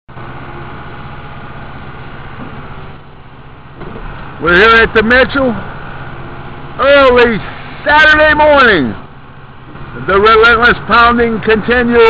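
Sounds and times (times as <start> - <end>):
engine idling rumble: 0.1 - 12.0.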